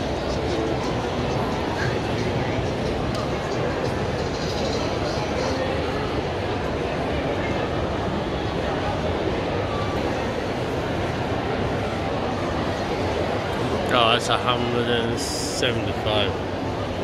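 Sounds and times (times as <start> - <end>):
crowd hubbub: 0.0 - 17.0.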